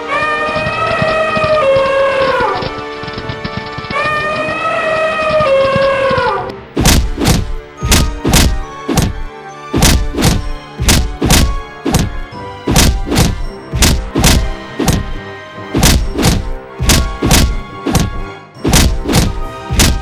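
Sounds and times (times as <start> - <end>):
background music: 0.0 - 20.0
heavy fight thuds: 6.8 - 15.2, 15.8 - 20.0.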